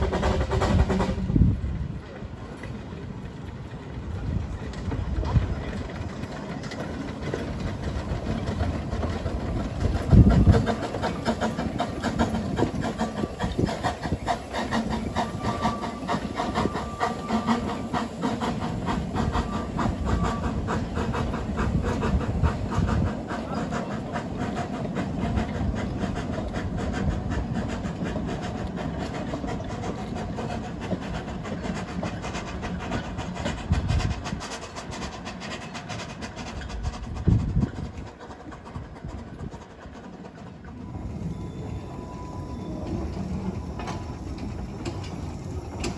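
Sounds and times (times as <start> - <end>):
steam noise: 0.0 - 45.9
train clicking along track: 0.0 - 45.9.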